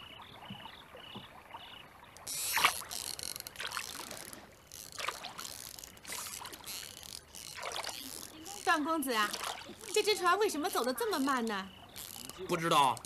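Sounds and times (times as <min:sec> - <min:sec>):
oars splashing in water: 0:00.0 - 0:13.0.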